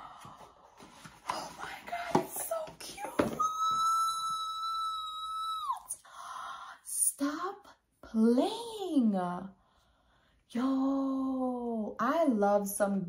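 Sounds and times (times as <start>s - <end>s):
woman squealing with excitement: 3.4s - 5.9s.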